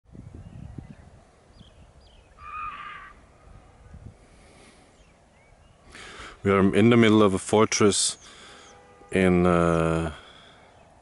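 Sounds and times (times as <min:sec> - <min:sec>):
drawn-out animal call: 0:02.4 - 0:03.7.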